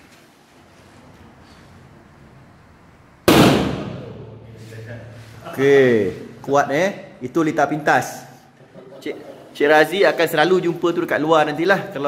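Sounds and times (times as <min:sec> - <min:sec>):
steady low hum: 0:00.7 - 0:05.6
short circuit bang: 0:03.3 - 0:04.4.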